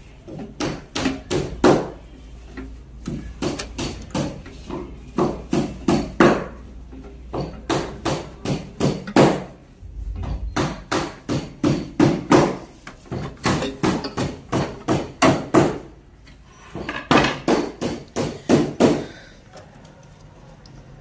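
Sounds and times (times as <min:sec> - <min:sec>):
faint low hum: 0:09.8 - 0:10.8
rapid sharp knocks: 0:10.6 - 0:12.6.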